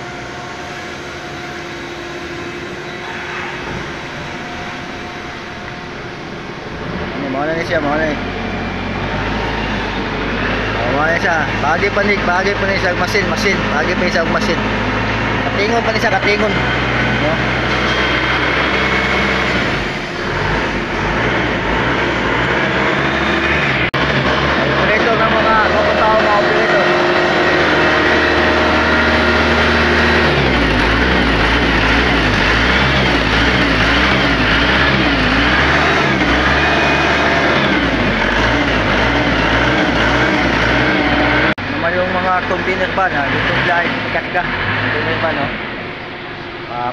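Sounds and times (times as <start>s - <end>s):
factory machinery noise: 0.0s - 46.9s
indistinct voices: 0.0s - 46.9s.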